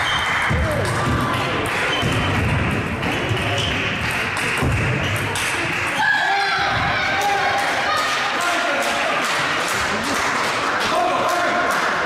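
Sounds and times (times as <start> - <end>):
murmur of sports hall: 0.0 - 12.0.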